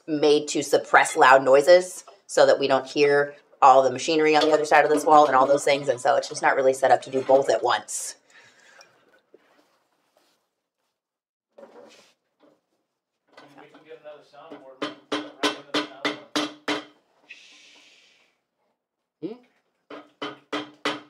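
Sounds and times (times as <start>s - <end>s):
hammer tapping on stone: 14.5s - 17.0s.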